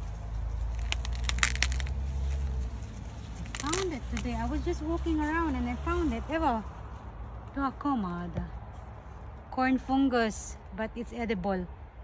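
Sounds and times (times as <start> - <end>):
corn husks cracking: 0.0 - 4.8
leaves rustling: 0.0 - 7.4.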